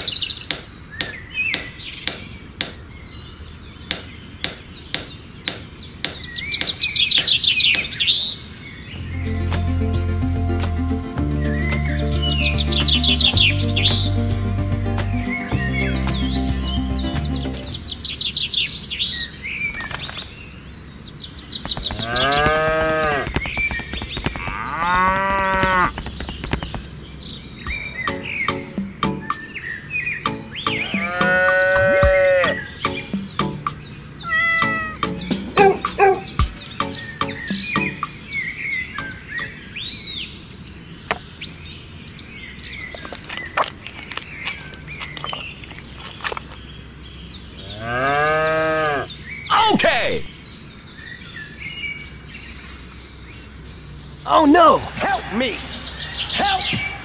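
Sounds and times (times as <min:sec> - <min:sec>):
birds chirping: 0:00.0 - 0:57.0
cow mooing: 0:22.0 - 0:23.3, 0:24.4 - 0:25.9, 0:30.8 - 0:32.6, 0:47.7 - 0:49.1.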